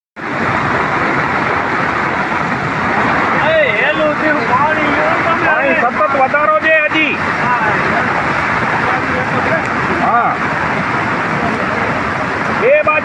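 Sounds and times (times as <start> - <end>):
floodwater rushing across road: 0.2 - 13.0
people's voices: 3.2 - 13.0.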